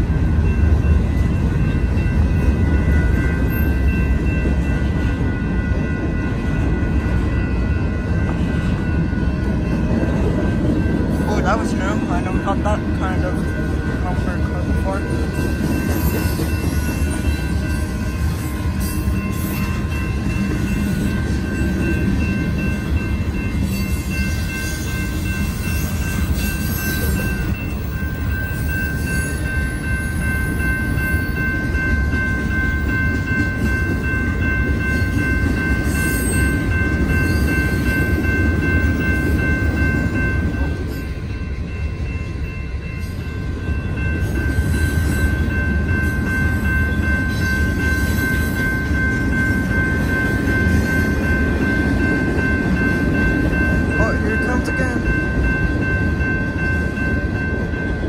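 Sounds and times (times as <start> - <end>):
crossing warning bell ringing: 0.0 - 58.0
freight train rumbling and clattering: 0.0 - 58.0.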